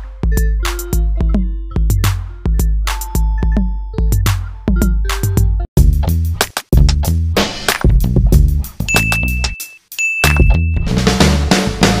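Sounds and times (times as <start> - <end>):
background music with beat and bass: 0.0 - 12.0
bright bell ding: 8.9 - 10.9.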